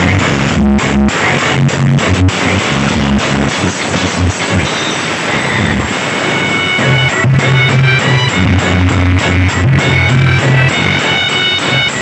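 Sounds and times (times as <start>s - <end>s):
loud distorted sound system music: 0.0s - 12.0s.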